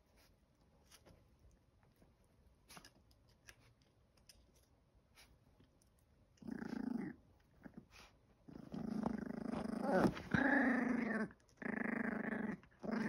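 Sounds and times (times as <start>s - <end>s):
puppy growling: 6.4s - 13.0s.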